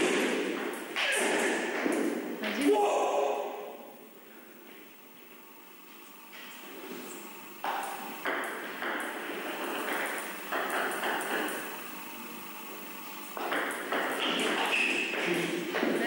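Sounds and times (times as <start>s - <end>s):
table tennis ball knocking: 7.6s - 11.7s, 13.4s - 16.0s.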